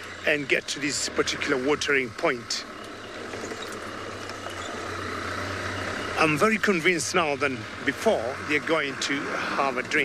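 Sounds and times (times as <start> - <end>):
vehicle engine hum: 0.0 - 10.0
wind and road noise: 0.0 - 10.0.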